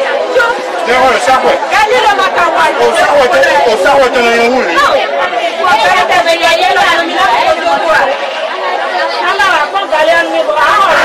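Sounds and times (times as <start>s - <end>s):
voices talking quickly: 0.0s - 11.0s.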